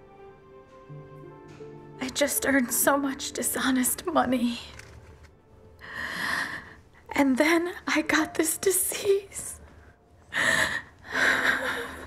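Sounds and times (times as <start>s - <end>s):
woman breathing heavily: 5.8s - 7.0s, 10.3s - 12.0s.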